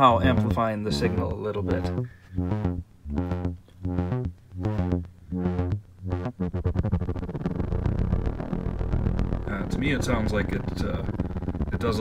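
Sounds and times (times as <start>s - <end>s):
synthesizer buzzy note sequence: 0.0s - 12.0s.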